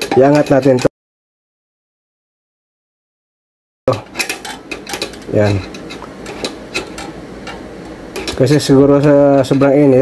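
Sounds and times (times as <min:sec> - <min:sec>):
screwdriver clicking and scraping metal: 0:00.0 - 0:00.9, 0:04.2 - 0:07.6.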